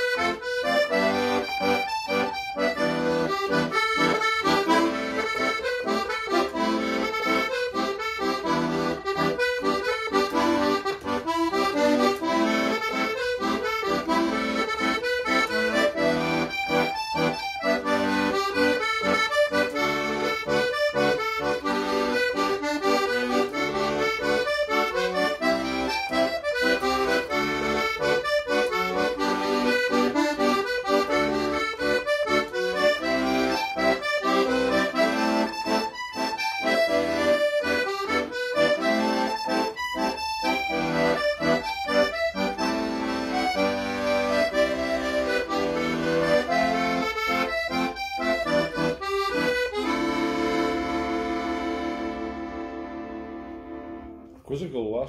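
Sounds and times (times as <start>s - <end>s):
accordion playing folk tune: 0.0s - 54.8s.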